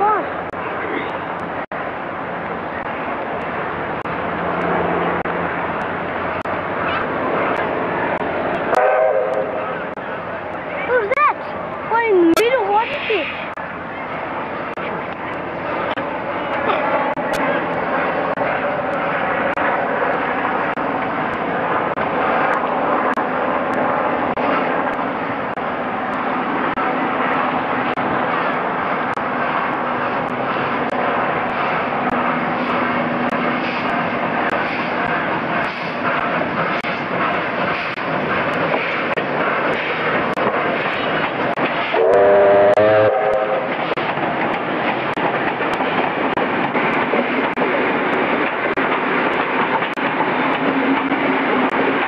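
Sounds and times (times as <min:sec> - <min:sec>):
steam locomotive running: 0:00.0 - 0:52.0
steam whistle: 0:08.8 - 0:09.5, 0:42.0 - 0:43.7.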